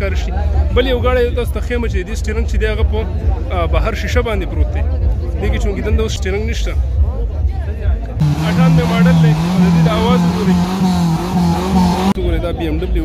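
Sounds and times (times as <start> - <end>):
car engine revving high: 8.2 - 12.2
voices: 8.2 - 12.2.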